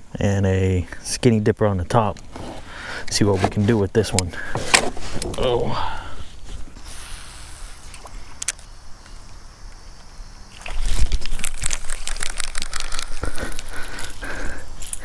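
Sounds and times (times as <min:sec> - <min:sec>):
sharp clicks and rattles: 0:10.7 - 0:15.0.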